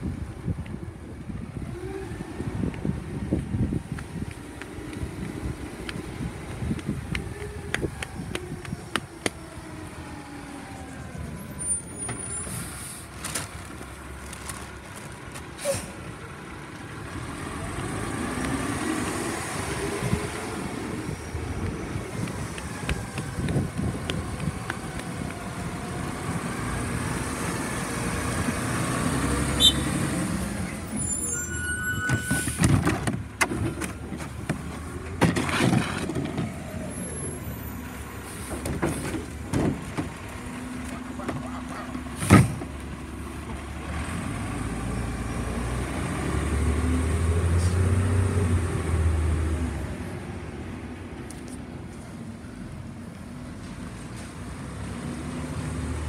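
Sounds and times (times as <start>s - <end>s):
garbage truck diesel engine: 0.1s - 56.0s.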